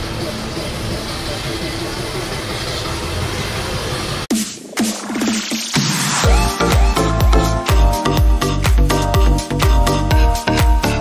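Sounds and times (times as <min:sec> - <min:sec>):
vehicle engine running: 0:00.0 - 0:04.3.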